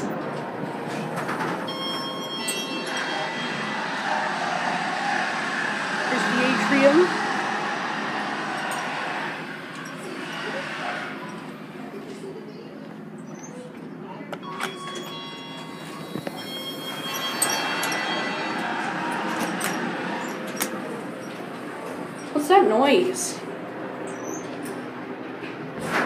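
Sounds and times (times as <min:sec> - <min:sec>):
elevator rushing hum: 0:00.0 - 0:26.0
faint background voices: 0:08.8 - 0:14.8.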